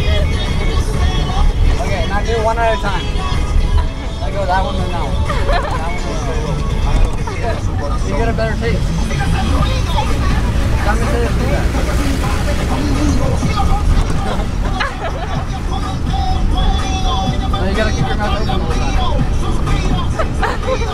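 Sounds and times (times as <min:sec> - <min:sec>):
vehicle low rumble: 0:00.0 - 0:20.9
children laughing and shrieking: 0:05.0 - 0:08.2, 0:08.9 - 0:17.0, 0:19.7 - 0:20.9.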